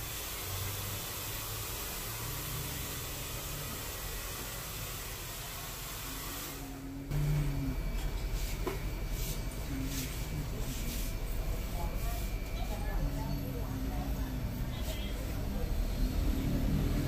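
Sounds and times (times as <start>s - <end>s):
short low tone: 7.1s - 8.0s.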